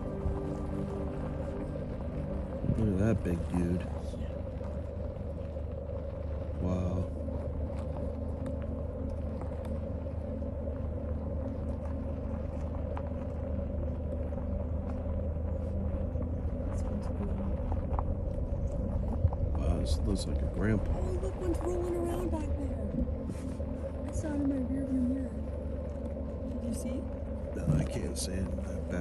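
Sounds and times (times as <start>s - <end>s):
car engine rumble in cabin: 7.2s - 29.0s.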